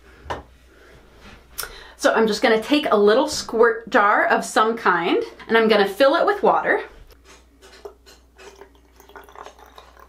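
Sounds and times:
water trickling into bottle: 7.8s - 10.0s.

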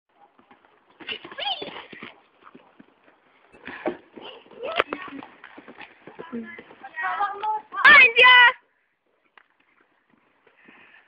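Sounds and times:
horse hoofbeats: 0.1s - 7.9s.

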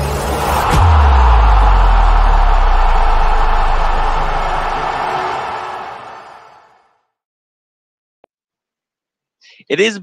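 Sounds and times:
deep bass rumble: 0.1s - 4.9s.

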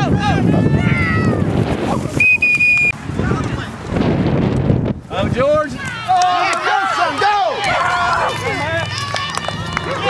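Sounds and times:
people shouting and calling: 0.0s - 2.2s, 5.1s - 10.0s.

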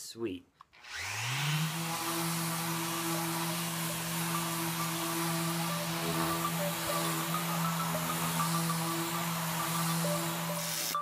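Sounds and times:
orbital sander sanding wood: 0.8s - 11.0s.

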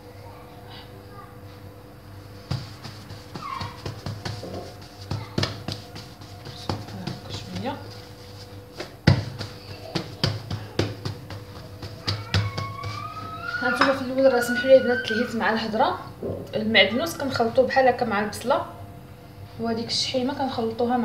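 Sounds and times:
steady low hum: 0.0s - 14.7s
hands slapping bread dough: 2.4s - 13.9s.

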